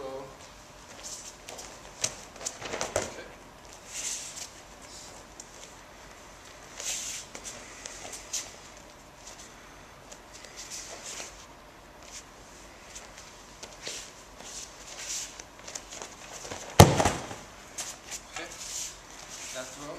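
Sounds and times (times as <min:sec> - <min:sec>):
rustling of cloth uniforms: 0:00.4 - 0:19.9
bare feet shuffling on mat: 0:10.1 - 0:19.9
body thumping onto mat: 0:16.4 - 0:17.5.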